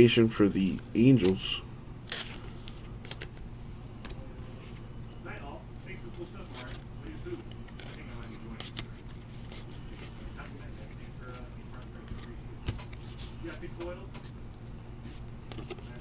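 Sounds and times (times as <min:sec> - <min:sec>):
steady low hum: 0:00.0 - 0:16.0
trading cards rustling: 0:00.2 - 0:03.4, 0:04.0 - 0:16.0.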